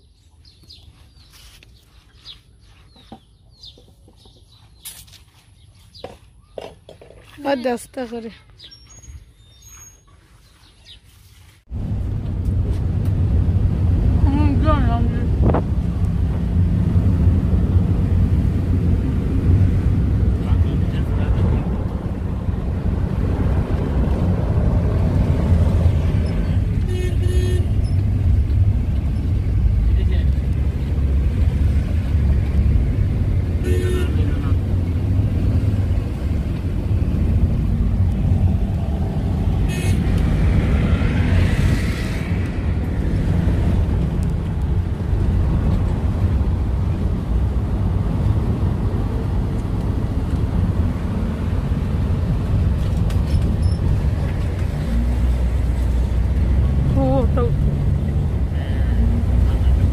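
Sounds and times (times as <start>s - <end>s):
engine and road rumble: 0.0s - 59.9s
vehicle horn toots: 26.8s - 28.0s, 33.6s - 34.5s, 39.6s - 40.1s.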